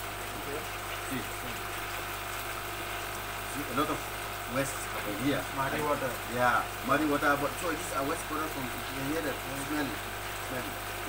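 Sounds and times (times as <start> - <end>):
water running into plastic bucket: 0.0 - 11.0.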